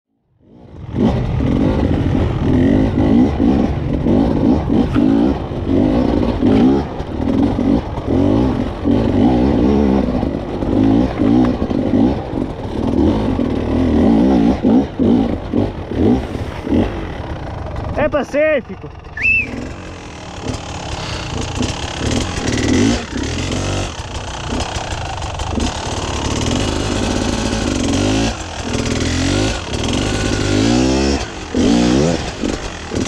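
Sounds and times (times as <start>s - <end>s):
motorcycle engine revving: 0.3s - 33.0s.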